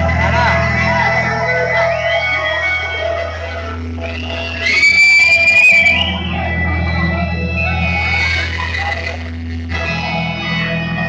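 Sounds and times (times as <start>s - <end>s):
live stage music over sound system: 0.0s - 11.0s.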